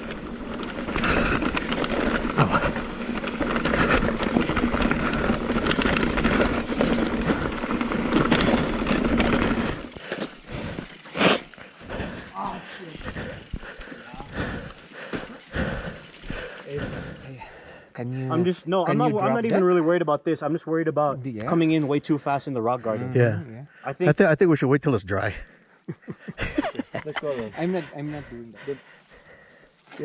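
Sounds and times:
bike tyre and drivetrain rumble: 0.0 - 17.8.

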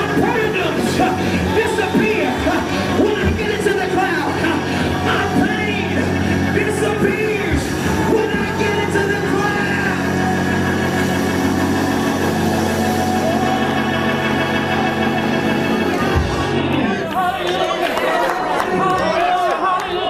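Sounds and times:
held gospel chords: 0.0 - 18.0.

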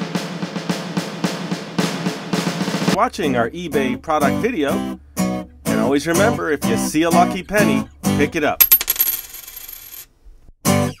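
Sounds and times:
coin spinning on hard surface: 8.6 - 10.1.

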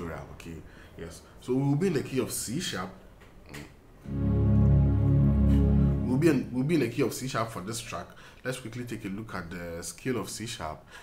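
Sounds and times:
electronic keyboard strings chord: 4.1 - 6.6.

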